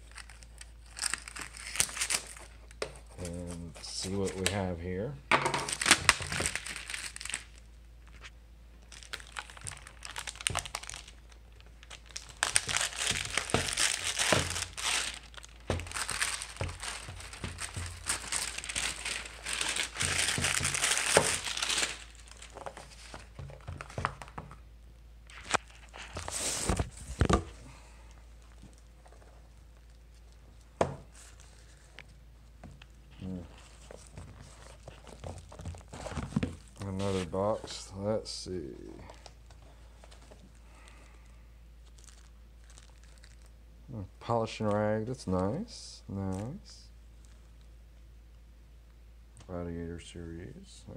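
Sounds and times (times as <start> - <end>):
plastic shrink wrap crinkling: 0.0 - 4.8, 5.5 - 24.6, 25.2 - 37.9, 38.7 - 43.6, 46.2 - 47.7.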